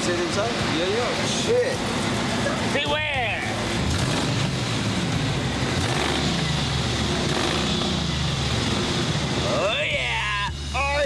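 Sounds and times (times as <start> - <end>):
car engine running: 0.0 - 11.0.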